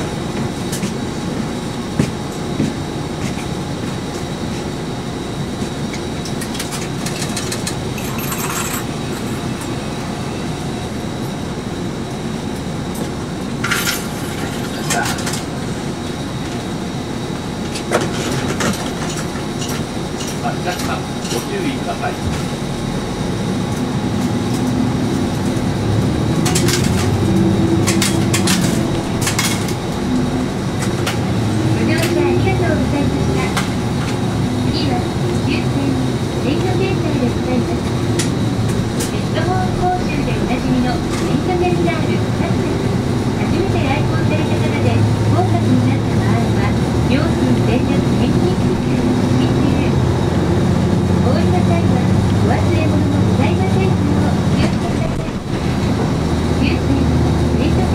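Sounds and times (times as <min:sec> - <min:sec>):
bus engine running: 0:00.0 - 0:57.9
interior clicks and rattles: 0:05.9 - 0:08.8, 0:26.3 - 0:32.4.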